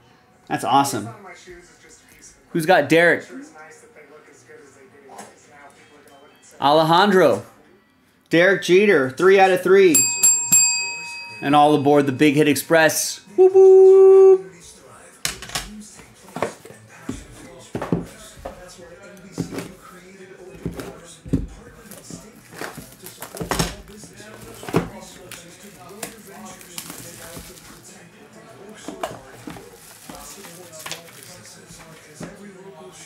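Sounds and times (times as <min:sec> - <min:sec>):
boxes knocking on table: 0:20.6 - 0:23.9
plastic wrap crinkling: 0:21.8 - 0:28.0, 0:29.0 - 0:32.1.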